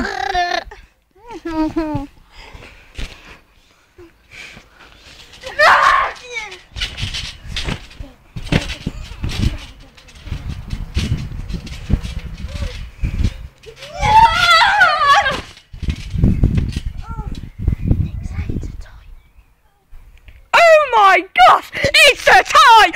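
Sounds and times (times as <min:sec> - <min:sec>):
child squealing: 0:13.8 - 0:15.4.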